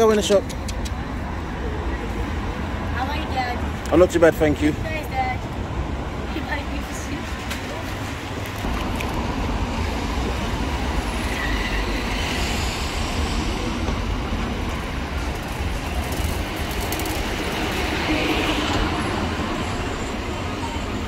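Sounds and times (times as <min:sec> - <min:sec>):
passing road traffic rumble: 0:00.0 - 0:21.0.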